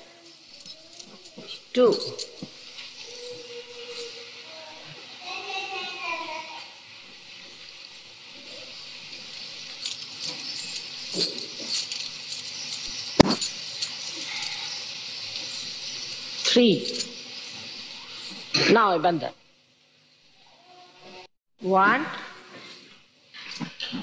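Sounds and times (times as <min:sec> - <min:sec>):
old recording hiss: 0:00.0 - 0:24.0
faint voice: 0:03.0 - 0:06.6.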